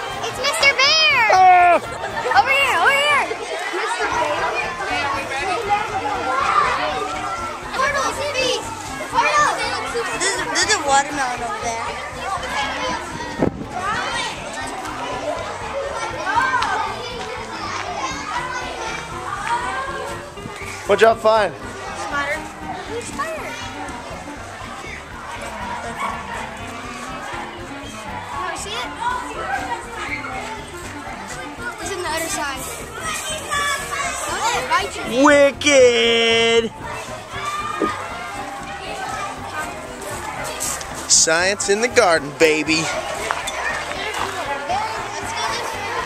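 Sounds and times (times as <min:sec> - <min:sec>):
children chattering: 0:00.0 - 0:46.0.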